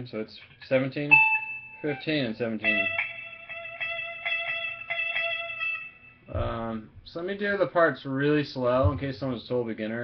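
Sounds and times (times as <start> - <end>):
electric guitar solo high notes: 1.1 - 6.8.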